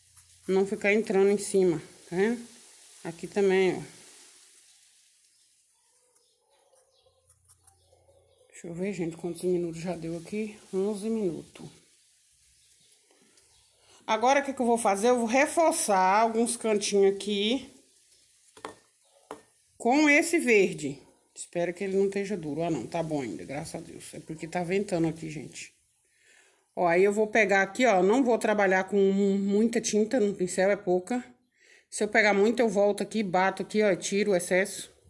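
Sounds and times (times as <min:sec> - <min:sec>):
woman speaking: 0:00.5 - 0:03.9, 0:08.5 - 0:11.8, 0:14.1 - 0:17.7, 0:19.8 - 0:25.7, 0:26.8 - 0:35.0
paintbrush knocking on ceramic saucer: 0:18.6 - 0:19.5.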